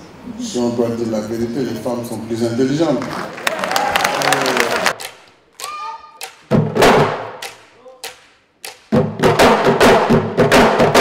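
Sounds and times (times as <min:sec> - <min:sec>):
audience clapping: 0:02.9 - 0:06.4
drum strokes: 0:05.0 - 0:11.0
loud low drum hits: 0:06.5 - 0:07.4.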